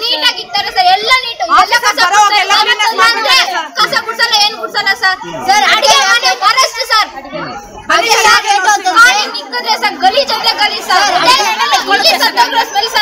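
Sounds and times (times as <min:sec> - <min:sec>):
women talking in agitated voices: 0:00.0 - 0:13.0.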